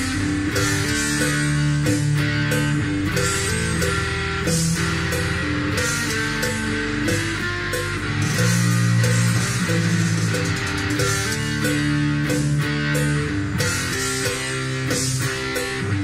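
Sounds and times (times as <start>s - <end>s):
electric guitar melody: 0.0s - 16.0s.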